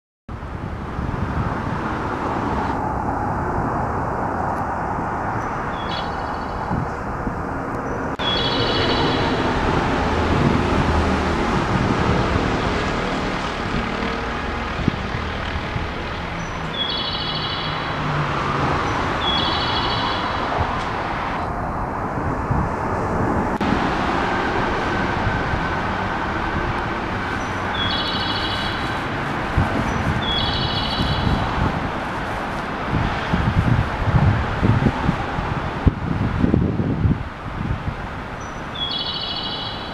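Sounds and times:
train rumbling past: 0:00.8 - 0:37.1.

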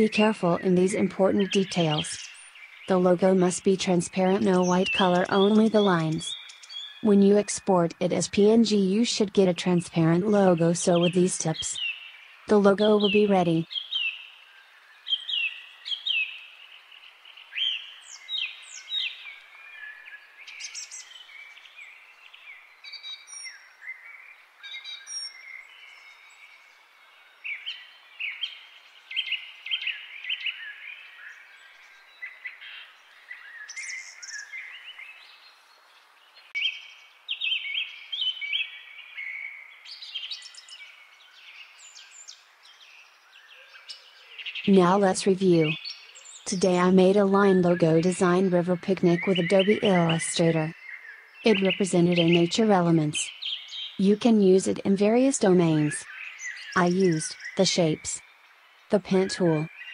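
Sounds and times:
birds chirping and singing: 0:00.0 - 0:59.9.

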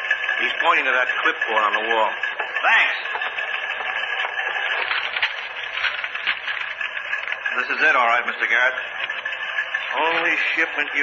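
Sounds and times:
teletype machines clattering: 0:00.0 - 0:11.0.

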